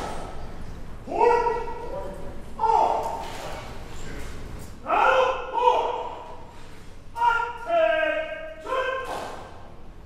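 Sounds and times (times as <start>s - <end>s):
person shouting commands in hall: 1.0s - 3.2s, 4.8s - 6.4s, 7.1s - 9.6s.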